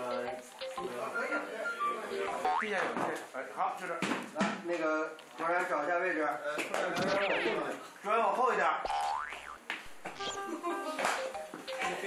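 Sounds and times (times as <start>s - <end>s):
light bright background music: 0.0s - 2.5s, 10.2s - 12.0s.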